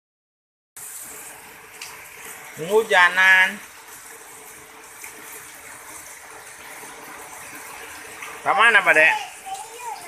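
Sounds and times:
steady rain falling: 0.8 - 10.0.

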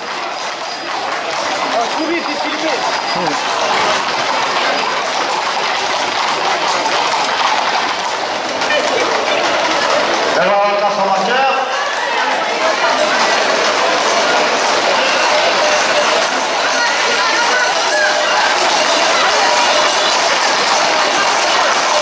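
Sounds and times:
hooves clattering on asphalt: 0.0 - 11.0
crowd voices: 0.0 - 22.0.

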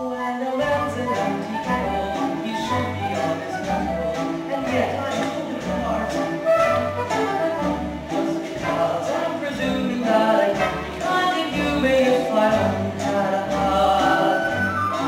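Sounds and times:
orchestral music with pulsing bass: 0.2 - 15.0.

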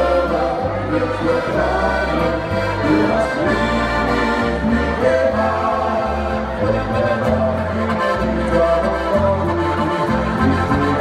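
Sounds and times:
accordion: 0.0 - 11.0
electric bass: 0.0 - 11.0
voices singing: 0.0 - 11.0.

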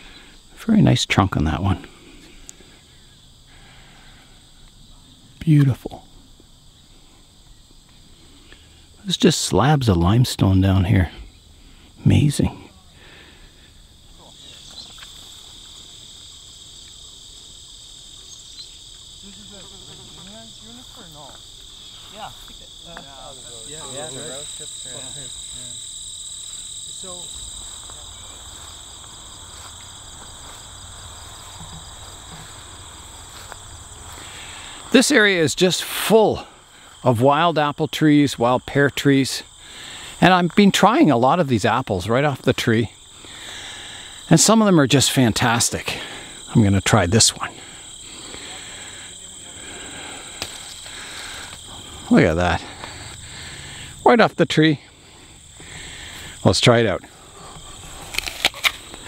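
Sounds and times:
crickets trilling: 0.0 - 59.0
apple snapping off tree: 58.0 - 59.0.

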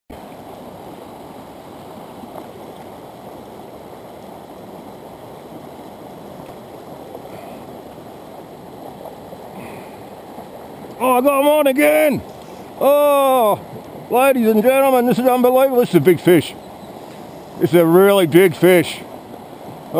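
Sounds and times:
stream rushing over rocks: 0.1 - 19.9.

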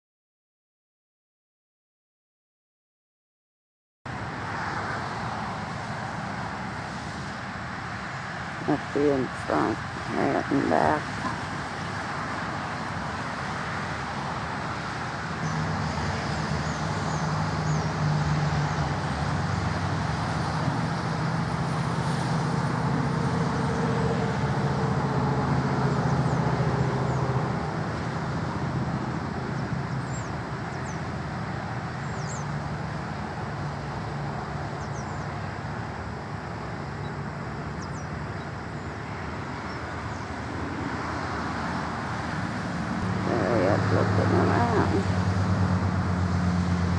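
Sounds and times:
low engine hum: 4.1 - 46.9
road traffic rushing: 4.1 - 46.9.

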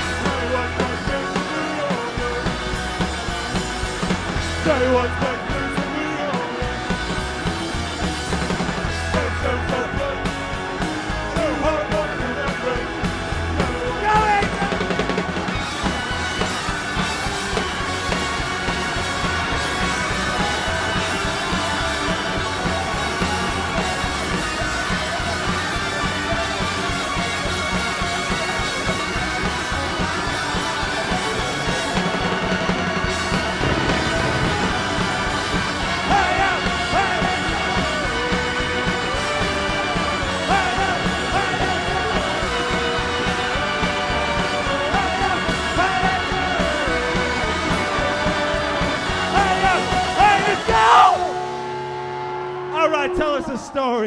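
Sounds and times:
person singing: 0.0 - 2.7, 33.7 - 51.4
upright bass: 0.0 - 51.5
electric guitars: 0.0 - 53.8
drums: 0.0 - 54.0.

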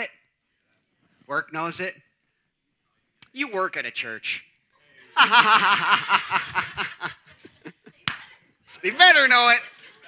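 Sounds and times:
man laughing: 5.2 - 7.7.

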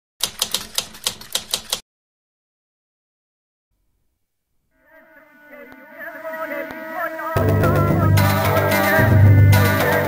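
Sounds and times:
typewriter key clicks: 0.2 - 1.8.

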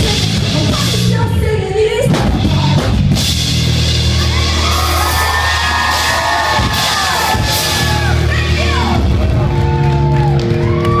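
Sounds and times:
live rock band: 0.0 - 11.0
crowd cheering and whooping: 4.0 - 11.0.

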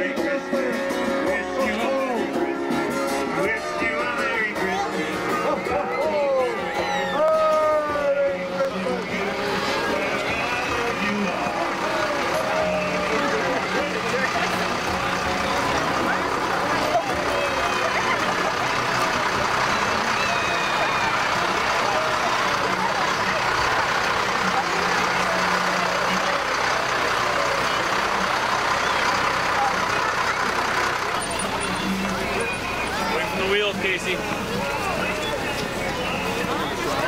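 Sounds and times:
crowd chatter: 0.0 - 37.0
fire truck engine humming: 0.9 - 37.0.

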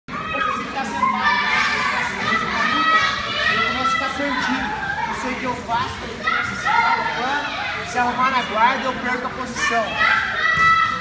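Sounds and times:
children chattering and calling out: 0.1 - 11.0.

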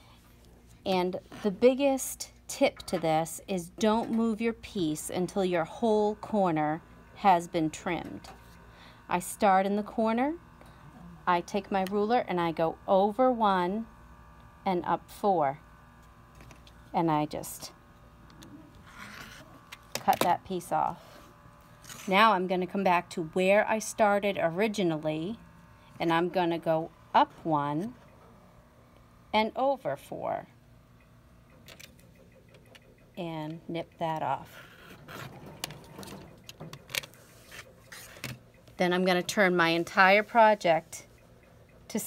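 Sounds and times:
rotary cutter slicing fabric: 21.0 - 22.4.

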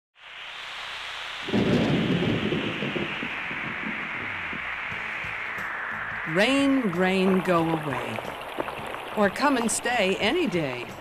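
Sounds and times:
heavy rain: 0.2 - 11.0
thunder clap: 1.4 - 9.8.

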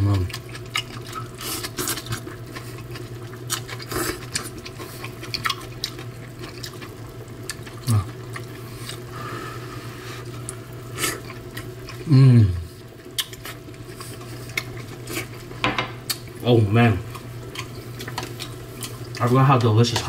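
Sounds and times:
wet chewing: 0.0 - 9.1, 10.2 - 12.1, 12.8 - 16.4, 17.0 - 20.0
broth bubbling: 2.0 - 19.2
person humming mm: 7.8 - 8.2, 12.0 - 12.7.

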